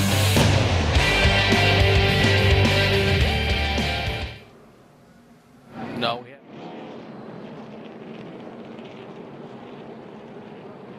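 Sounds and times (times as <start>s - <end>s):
race car engines droning: 0.0s - 10.9s.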